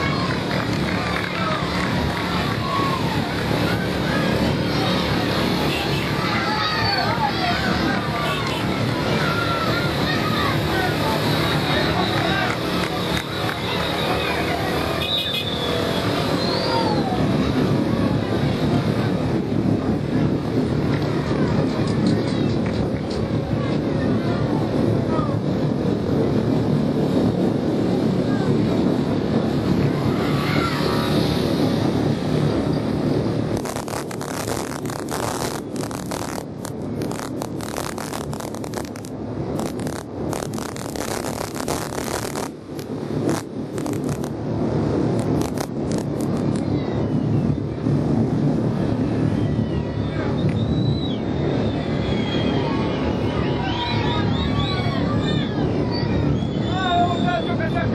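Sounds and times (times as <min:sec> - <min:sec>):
spectators shouting: 0:00.0 - 0:17.4, 0:29.8 - 0:31.5, 0:51.4 - 0:57.4
vehicle engine and road noise: 0:00.0 - 0:57.9
sharp cracks: 0:33.5 - 0:44.4, 0:45.1 - 0:46.6.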